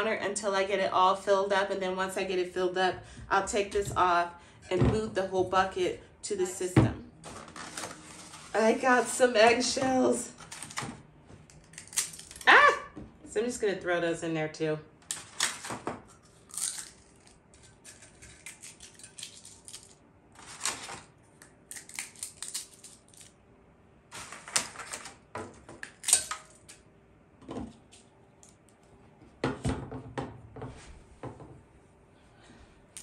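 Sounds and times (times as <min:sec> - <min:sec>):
eggshells being crushed by hand: 0:11.6 - 0:12.4, 0:16.2 - 0:20.0, 0:21.4 - 0:23.3.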